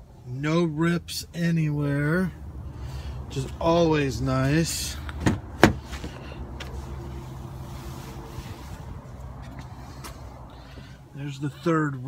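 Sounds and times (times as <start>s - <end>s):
car door shutting: 5.2s - 6.2s.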